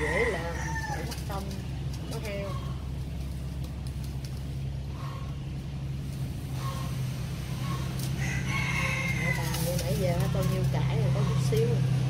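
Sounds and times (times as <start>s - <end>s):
rooster crowing: 0.0s - 1.3s, 7.5s - 9.8s
steady low hum: 0.0s - 12.0s.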